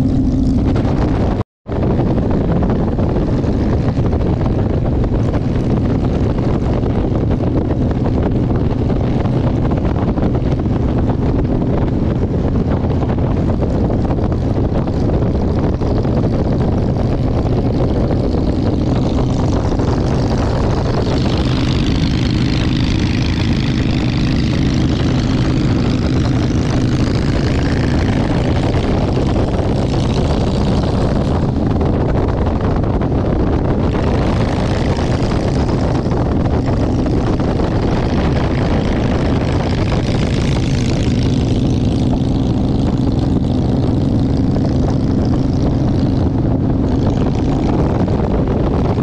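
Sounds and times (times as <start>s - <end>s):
motorcycle engine running: 0.0s - 49.0s
wind rush: 0.0s - 49.0s.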